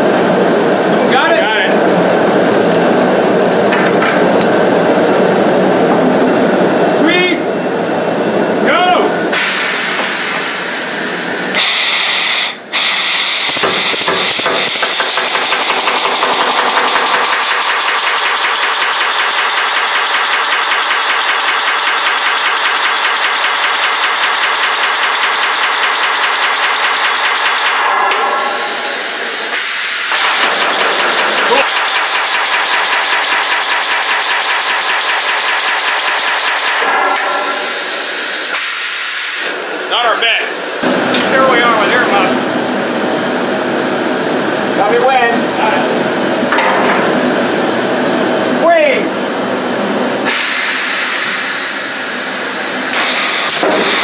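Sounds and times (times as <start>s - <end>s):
compressed air hissing: 7.7s - 15.5s, 28.2s - 32.0s, 37.4s - 48.3s, 49.2s - 54.0s
pneumatic riveter hammering: 9.3s - 10.8s, 11.5s - 39.6s, 46.5s - 47.3s, 50.2s - 54.0s.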